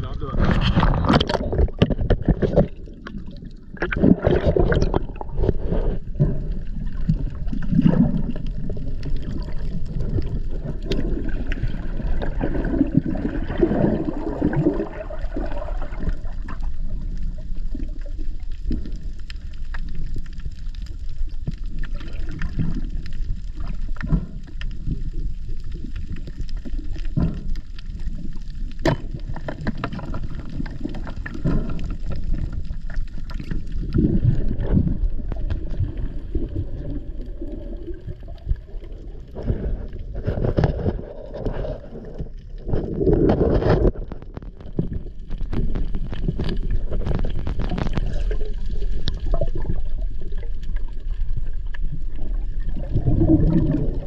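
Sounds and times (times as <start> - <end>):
bubbling and gurgling water: 0.0 - 54.0
low underwater rumble: 0.0 - 54.0.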